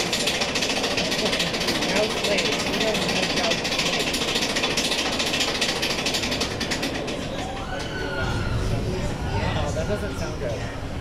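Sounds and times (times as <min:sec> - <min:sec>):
fast mechanical rattling: 0:00.0 - 0:07.8.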